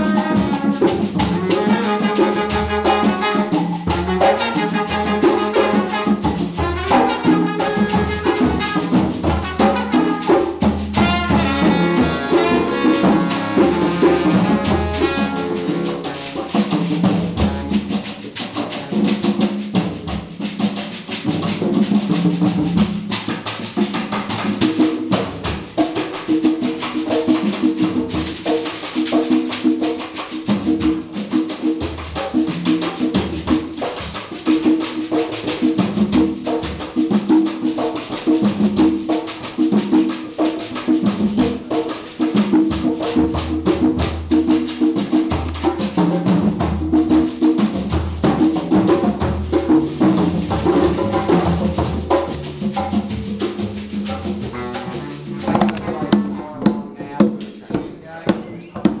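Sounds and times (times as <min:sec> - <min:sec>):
horns and bass riff: 0:00.0 - 0:18.1, 0:50.9 - 0:57.2
congas: 0:00.0 - 0:59.0
drum kit: 0:00.0 - 0:59.0
jazz band playing: 0:00.0 - 0:59.0.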